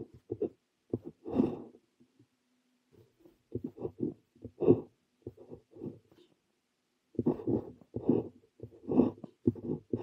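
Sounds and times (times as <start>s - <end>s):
pen nib scratching paper: 0.0s - 1.6s, 3.5s - 6.2s, 7.2s - 10.0s.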